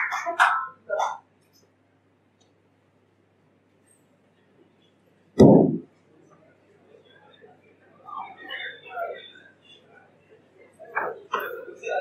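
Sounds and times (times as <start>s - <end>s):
microphone handling thump: 5.4s - 5.9s.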